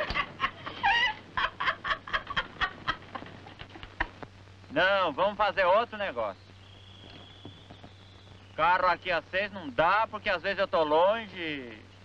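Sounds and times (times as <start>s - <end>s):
women laughing in staccato bursts: 0.0s - 4.2s.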